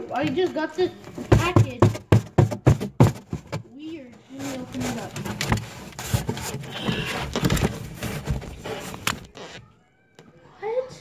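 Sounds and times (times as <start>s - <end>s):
cardboard box being opened: 4.3s - 9.6s.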